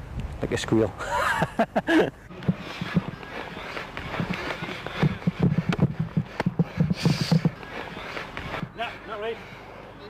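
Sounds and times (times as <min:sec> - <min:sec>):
footsteps jogging on grass: 0:02.4 - 0:09.0.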